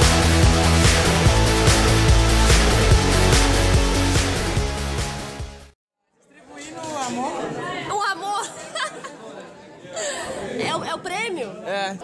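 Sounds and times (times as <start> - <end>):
people chatting: 6.3 - 12.0.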